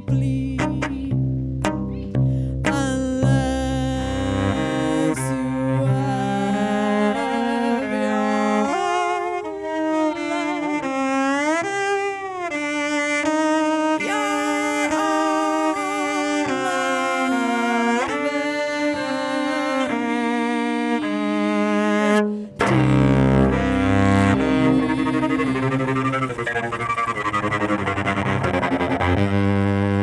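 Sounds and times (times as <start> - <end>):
solo cello melody: 0.0 - 30.0.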